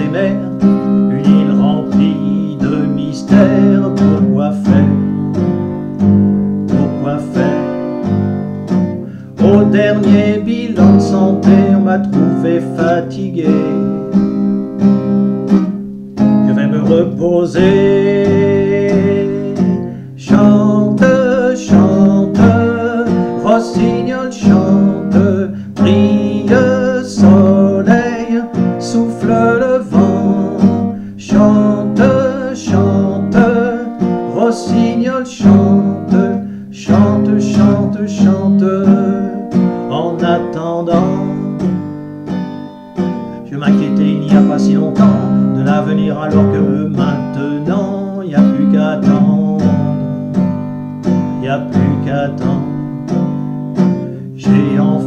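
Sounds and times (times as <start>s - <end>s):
man singing: 0.0s - 5.4s, 6.4s - 8.5s, 9.1s - 14.4s, 16.2s - 41.8s, 43.4s - 50.2s, 51.1s - 53.1s, 53.9s - 55.0s
acoustic guitar strumming: 0.0s - 55.0s.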